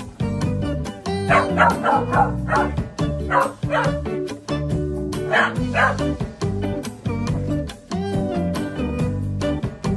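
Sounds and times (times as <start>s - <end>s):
background music: 0.0s - 9.9s
dog whining and yipping: 1.3s - 4.0s, 5.3s - 6.1s.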